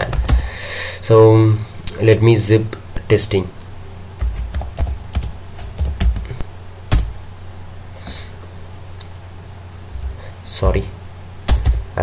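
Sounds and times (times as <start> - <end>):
low steady hum: 0.0 - 12.0
keyboard typing: 4.2 - 6.3.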